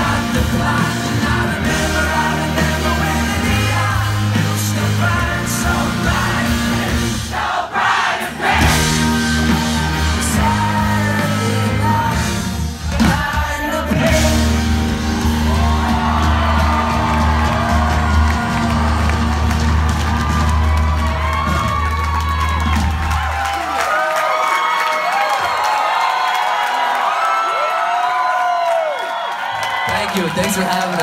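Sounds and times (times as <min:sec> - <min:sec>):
audience cheering and whooping: 0:13.9 - 0:31.0.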